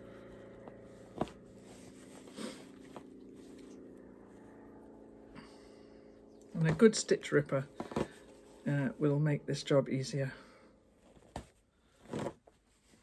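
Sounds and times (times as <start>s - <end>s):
faint room hum: 0.0s - 13.0s.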